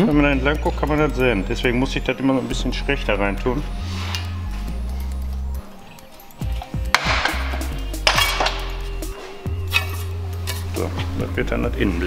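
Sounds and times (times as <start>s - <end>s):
background music: 0.0s - 12.0s
sheet metal clanking: 6.6s - 11.1s.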